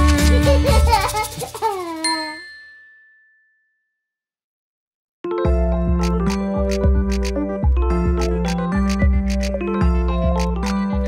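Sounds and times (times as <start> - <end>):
bright ding: 2.1 - 4.0.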